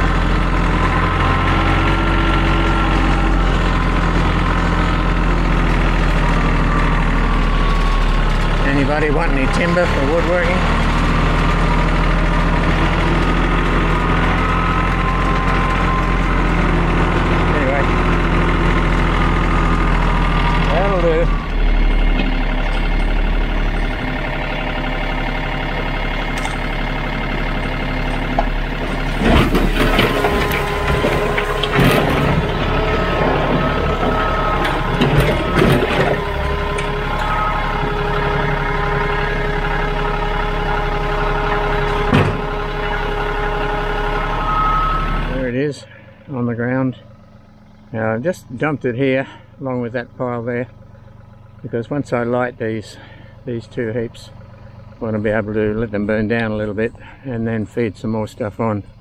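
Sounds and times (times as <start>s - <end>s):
tractor diesel engine running: 0.0s - 59.0s
branches clattering off trailer: 27.7s - 38.6s.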